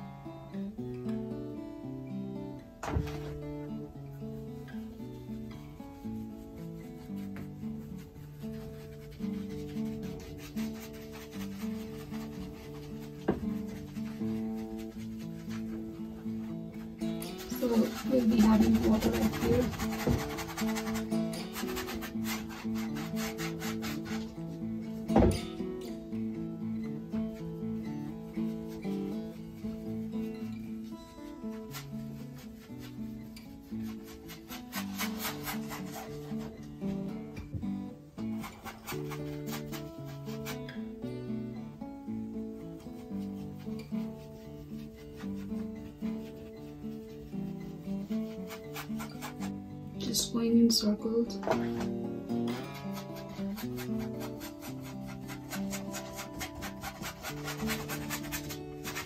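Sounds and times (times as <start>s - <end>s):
soft guitar music: 0.0s - 59.0s
rustling: 2.8s - 49.8s, 51.4s - 59.0s
paintbrush on canvas: 3.0s - 26.2s, 26.8s - 41.4s, 42.0s - 50.3s, 51.3s - 59.0s.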